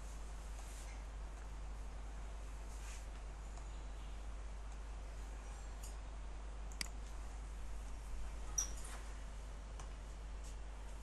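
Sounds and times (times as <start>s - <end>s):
low electrical hum: 0.0s - 11.0s
computer mouse clicks: 6.7s - 7.0s.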